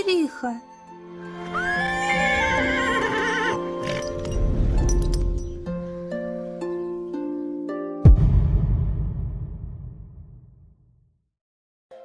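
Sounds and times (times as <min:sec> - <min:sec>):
background music of held notes: 0:00.0 - 0:08.4
horse whinnying: 0:01.2 - 0:04.3.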